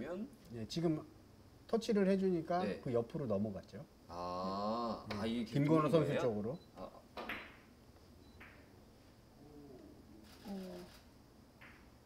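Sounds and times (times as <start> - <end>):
man humming: 4.1 - 5.1, 9.4 - 10.1.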